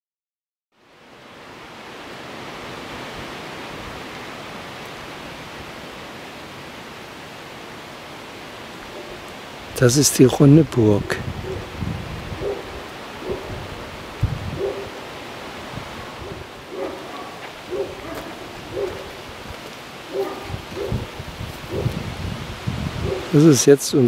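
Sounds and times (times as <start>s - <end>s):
rustling leaves: 0.8s - 24.0s
wind buffeting microphone: 10.5s - 23.5s.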